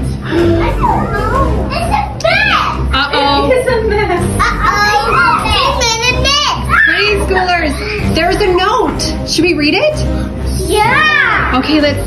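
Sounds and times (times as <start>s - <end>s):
background music: 0.0s - 12.0s
children talking and calling out: 0.3s - 3.0s, 4.3s - 8.2s, 10.5s - 11.7s.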